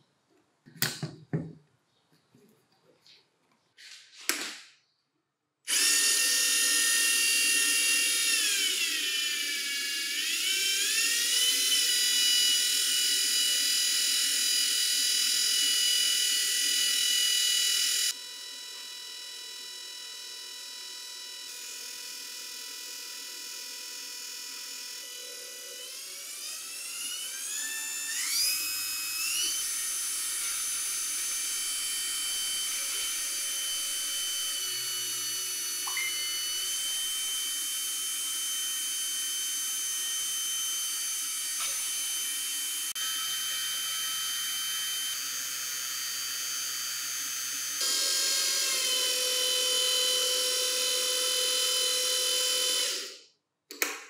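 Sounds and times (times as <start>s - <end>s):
electric motor whine: 5.7s - 53.2s.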